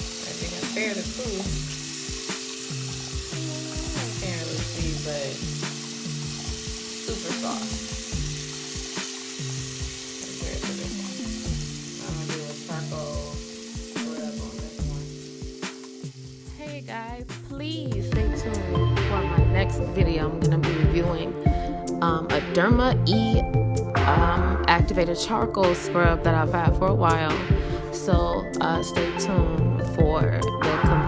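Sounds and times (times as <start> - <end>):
tap water running into sink: 0.0 - 16.9.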